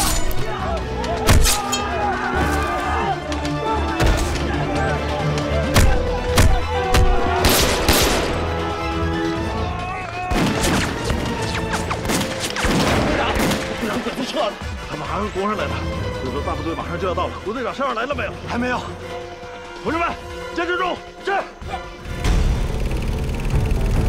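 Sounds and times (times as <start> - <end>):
men shouting: 0.0 - 10.4
dramatic background music: 0.0 - 24.0
gunshots and volleys: 5.7 - 8.5, 10.3 - 13.9.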